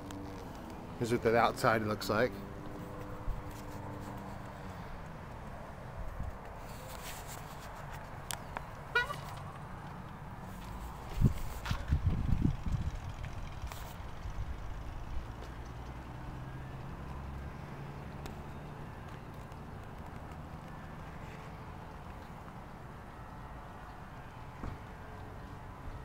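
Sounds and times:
footsteps: 2.6s - 8.2s, 9.0s - 12.0s.

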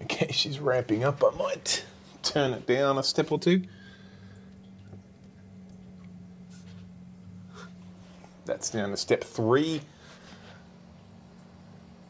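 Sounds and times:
pump humming faintly: 0.0s - 12.0s.

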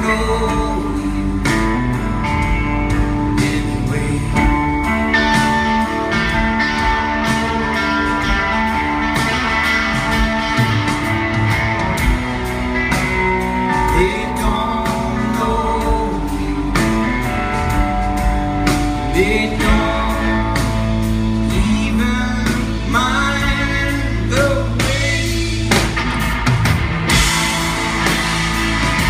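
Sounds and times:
bending sliding lead guitar: 0.0s - 29.0s
rock band playing: 0.0s - 29.0s.

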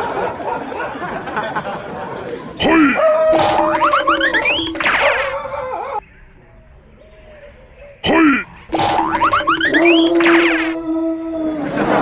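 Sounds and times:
held tone: 3.4s - 5.3s, 8.7s - 10.8s.

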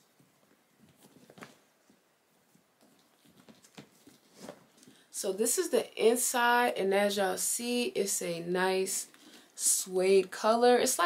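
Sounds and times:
handbag tapping and rustling: 2.6s - 5.0s.

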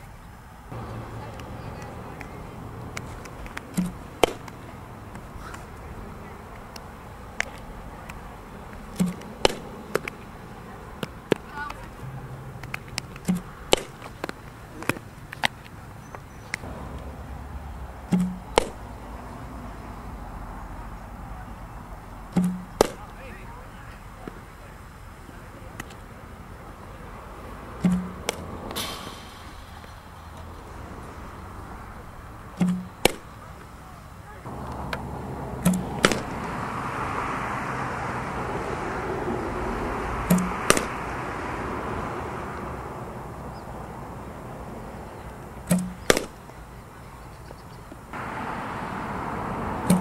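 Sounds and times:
outdoor noise: 0.0s - 50.0s
softballs being struck: 0.7s - 19.1s, 22.3s - 23.4s, 27.8s - 31.4s, 32.4s - 37.6s, 39.9s - 41.8s, 45.3s - 46.6s, 49.7s - 50.0s
bat cracking ball: 1.3s - 5.7s, 6.5s - 10.4s, 11.0s - 15.6s, 18.0s - 19.0s, 22.3s - 23.1s, 27.8s - 31.2s, 32.6s - 33.4s, 34.5s - 36.7s, 40.2s - 41.2s, 45.7s - 46.4s.

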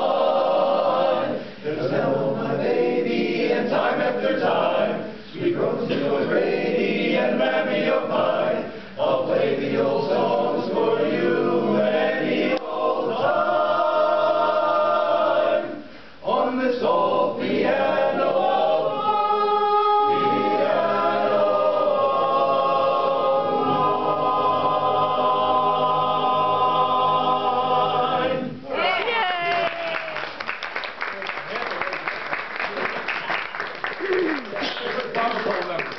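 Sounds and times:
men's chorus singing a cappella: 0.0s - 28.6s.

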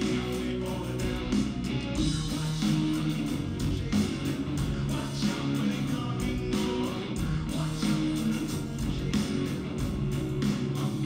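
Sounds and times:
bass guitar: 0.0s - 11.0s
drums: 0.0s - 11.0s
electric guitar: 0.0s - 11.0s.

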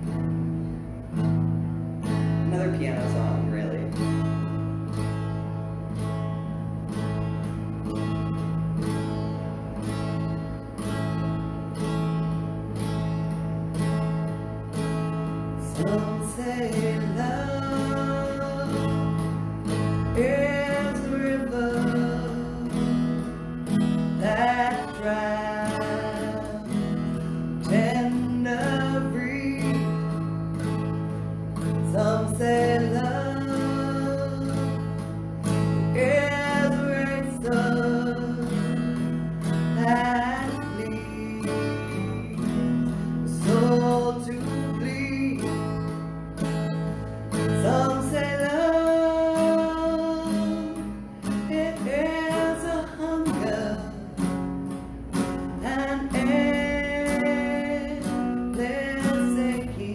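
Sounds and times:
acoustic guitar strumming: 0.0s - 59.9s
woman singing slow song: 2.2s - 5.5s, 15.0s - 59.9s.

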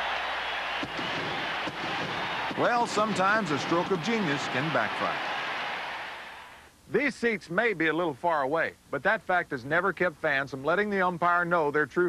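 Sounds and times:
crowd cheering: 0.0s - 6.7s.

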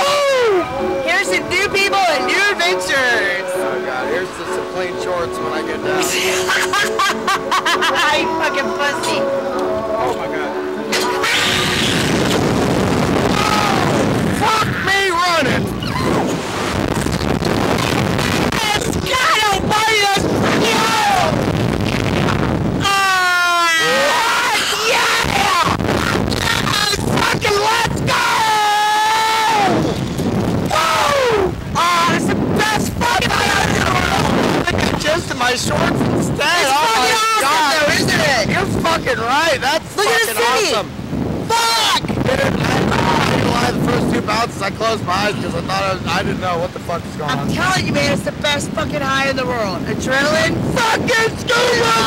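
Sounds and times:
wind rushing over microphone: 10.4s - 23.0s, 23.8s - 52.0s
riders screaming: 13.2s - 16.4s, 22.8s - 29.8s, 30.7s - 34.5s.

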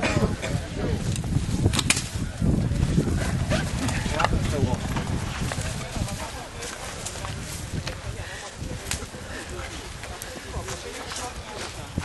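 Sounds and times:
voices calling and talking: 0.0s - 12.0s.

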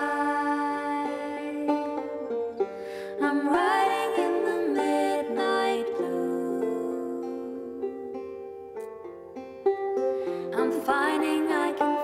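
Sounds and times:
women singing in harmony: 0.0s - 8.4s, 10.4s - 12.0s
banjo: 0.0s - 12.0s.

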